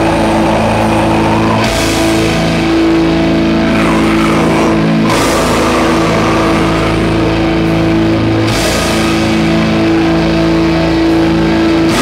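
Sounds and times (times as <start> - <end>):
distorted electric guitar and bass chords: 0.0 - 12.0.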